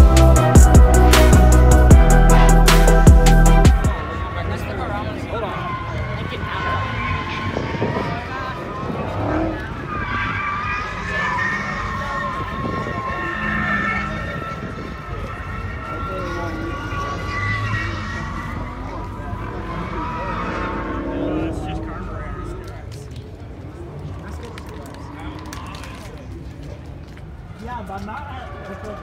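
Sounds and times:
indistinct voices: 0.0 - 29.0
low rumble: 11.7 - 24.2.

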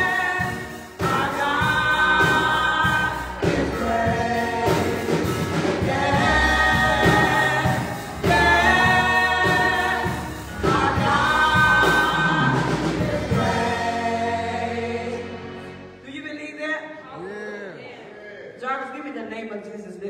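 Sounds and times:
live band with drums: 0.0 - 14.8
gospel singers in harmony: 0.0 - 16.0.

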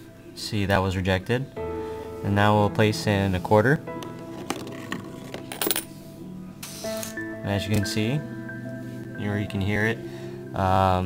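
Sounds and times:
background music: 0.0 - 11.0
coin clicking in coin sorter: 5.3 - 5.9.

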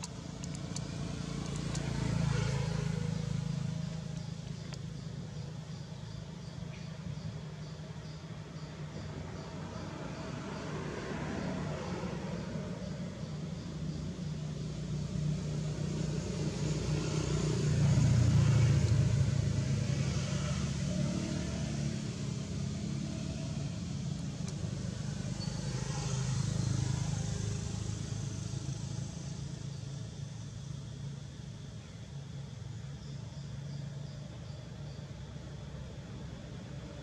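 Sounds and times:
passing motor vehicle engine hum: 0.0 - 37.0.

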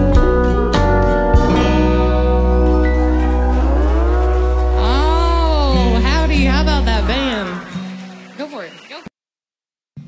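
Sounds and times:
sung melodic line: 0.0 - 6.6
live band sustained chords: 0.0 - 8.0.

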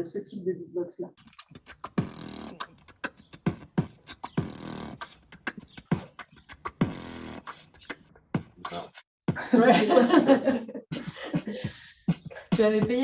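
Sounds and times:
human beatbox: 1.2 - 9.6, 10.9 - 13.0.

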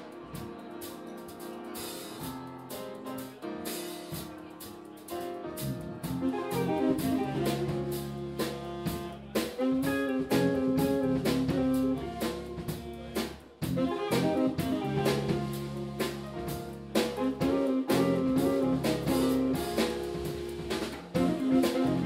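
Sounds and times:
drum kit cymbal strokes: 0.0 - 22.0
electric guitar: 5.6 - 8.9, 13.6 - 22.0
electric bass: 5.6 - 22.0
saxophone: 5.6 - 22.0.

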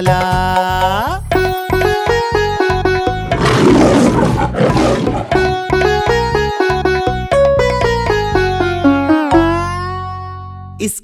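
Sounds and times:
instrumental music with plucked strings: 1.3 - 3.6, 4.4 - 10.8
cartoon lion roar: 3.3 - 5.5.

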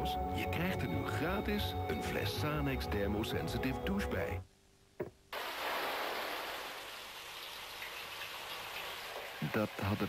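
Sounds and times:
shower spray running: 5.4 - 10.0.

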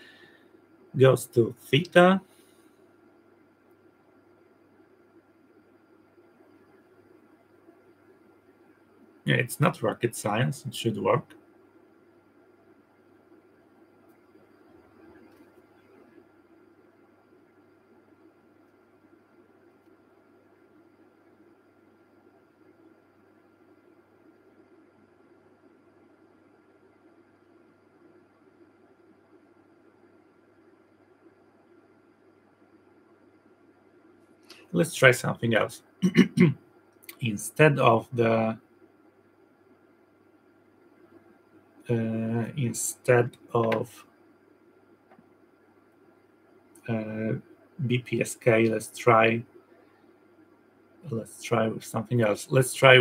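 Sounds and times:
faint steady hiss: 0.0 - 53.0
man speaking: 1.0 - 2.3, 9.3 - 11.3, 34.6 - 38.6, 41.9 - 44.0, 46.9 - 49.4, 51.0 - 53.0.

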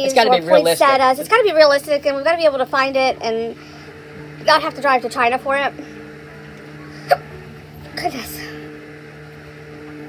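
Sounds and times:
person hiccuping: 7.0 - 7.4.

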